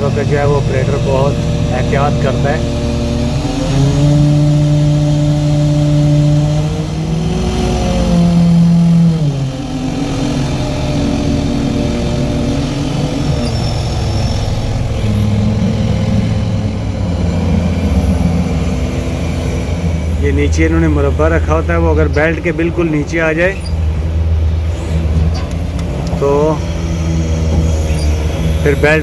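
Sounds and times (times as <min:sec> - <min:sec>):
crane diesel engine under load: 0:00.0 - 0:29.0.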